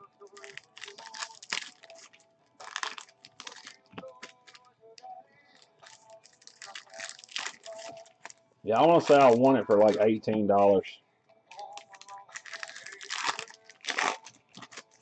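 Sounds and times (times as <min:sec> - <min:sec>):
card pack wrappers crinkling: 0:00.2 - 0:10.0, 0:11.5 - 0:15.0.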